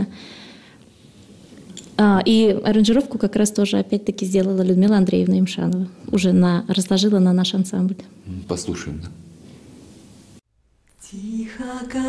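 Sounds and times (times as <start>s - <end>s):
soft hiss: 0.0s - 2.3s, 7.5s - 12.0s.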